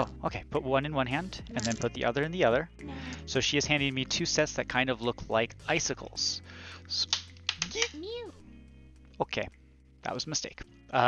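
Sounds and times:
faint background music: 0:00.0 - 0:11.0
plastic dice clicking: 0:01.5 - 0:02.0, 0:07.1 - 0:08.0.

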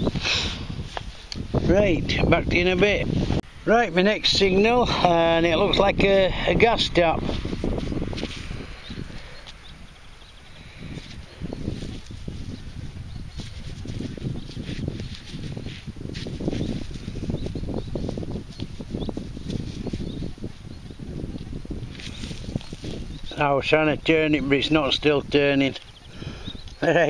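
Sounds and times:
gloved fingers rustling and scraping: 0:00.0 - 0:01.7, 0:07.2 - 0:23.3.

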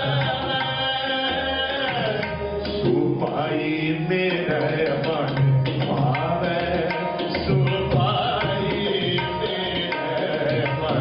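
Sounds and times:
man singing devotional hymn: 0:00.0 - 0:11.0
tabla strokes: 0:00.0 - 0:11.0.

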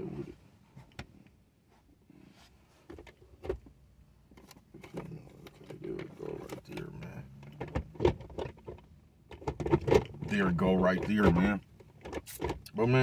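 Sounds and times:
objects knocking and clicking: 0:04.4 - 0:12.7
faint low mumbling voice: 0:04.8 - 0:07.7.

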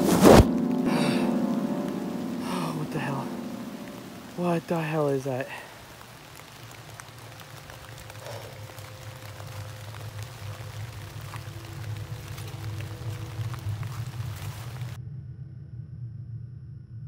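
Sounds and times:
low droning rumble: 0:00.0 - 0:17.0
light rain ticks: 0:00.6 - 0:15.0.

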